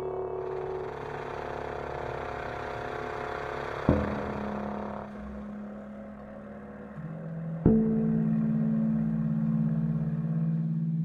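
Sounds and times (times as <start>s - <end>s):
low brass and bass drone: 0.0s - 11.0s.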